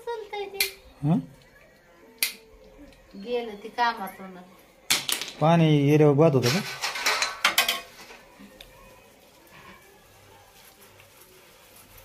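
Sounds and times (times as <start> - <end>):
metal utensils clinking: 6.3 - 8.4.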